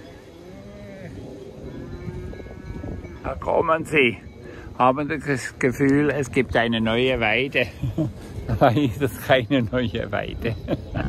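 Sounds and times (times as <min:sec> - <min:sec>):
cattle mooing: 0:00.0 - 0:03.2.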